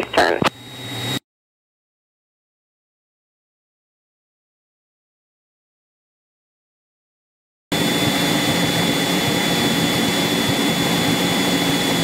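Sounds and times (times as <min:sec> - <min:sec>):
radio hiss with thin tone: 0:00.0 - 0:00.6.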